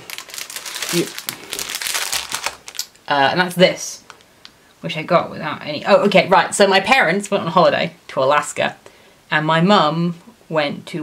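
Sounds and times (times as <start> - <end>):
plastic packaging crinkling: 0.0 - 4.6.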